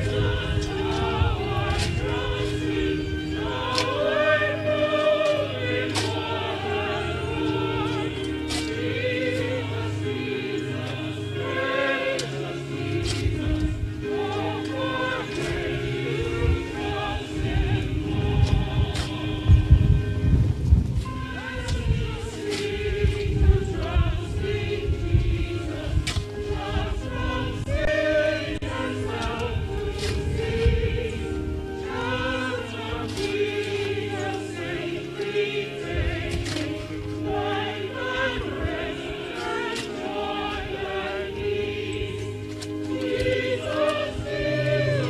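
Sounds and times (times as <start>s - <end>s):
group singing a slow hymn: 0.0s - 45.0s
low steady accompaniment: 0.0s - 45.0s.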